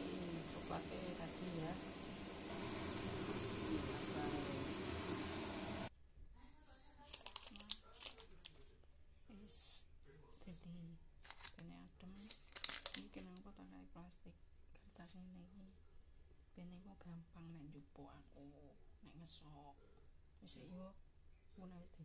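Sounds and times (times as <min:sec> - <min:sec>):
steady hiss: 0:00.0 - 0:05.9
plastic sheet crinkling: 0:07.0 - 0:08.6, 0:11.3 - 0:11.6, 0:12.2 - 0:13.2.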